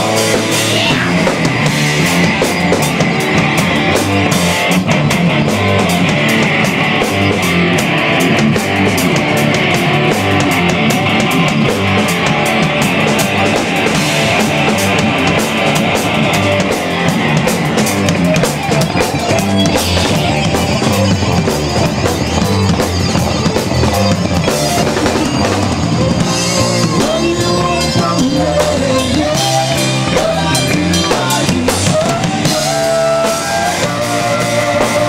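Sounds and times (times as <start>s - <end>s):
bass guitar: 0.0s - 35.0s
drum kit: 0.0s - 35.0s
electric guitars: 0.0s - 35.0s.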